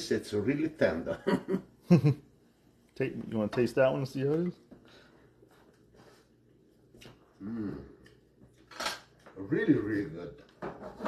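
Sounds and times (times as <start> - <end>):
person humming mm while tasting: 7.4 - 8.0.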